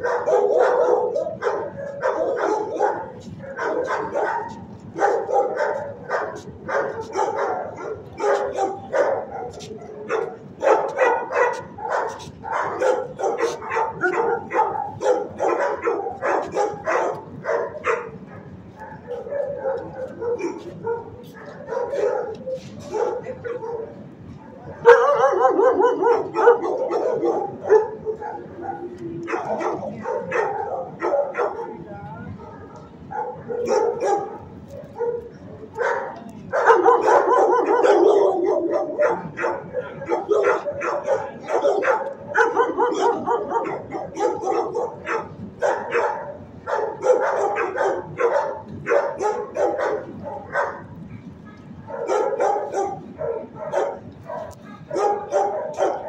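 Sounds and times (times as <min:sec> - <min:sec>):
dogs barking and yipping: 0:00.0 - 0:56.0.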